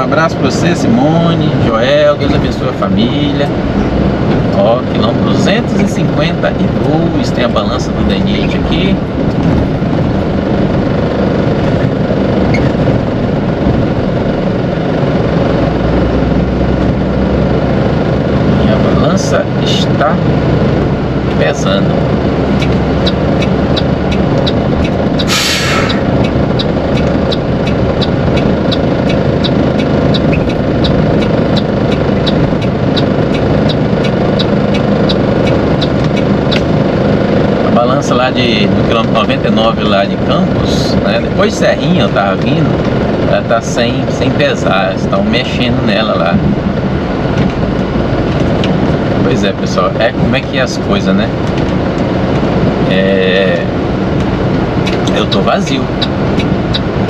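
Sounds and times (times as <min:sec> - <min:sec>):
truck diesel engine running: 0:00.0 - 0:57.0
turn signal ticking: 0:01.3 - 0:57.0
air brakes hiss: 0:25.3 - 0:26.0.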